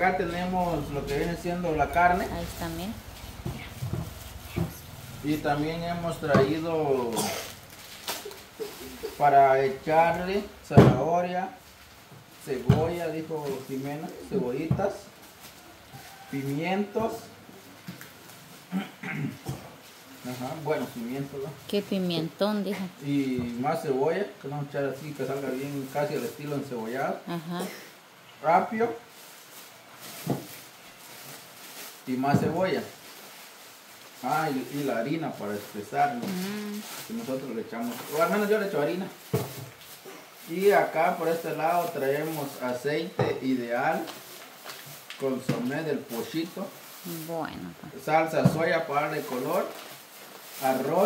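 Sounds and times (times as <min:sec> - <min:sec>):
plastic bag rustling: 0:00.0 - 0:18.7, 0:24.9 - 0:27.1, 0:28.6 - 0:51.0.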